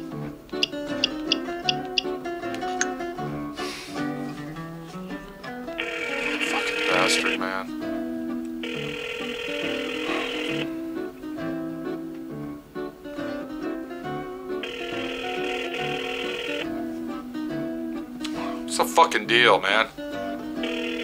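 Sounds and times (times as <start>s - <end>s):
guitar music: 0.0s - 21.0s
telephone ringback tone: 5.8s - 7.5s, 8.6s - 10.8s, 14.6s - 16.8s, 20.6s - 21.0s.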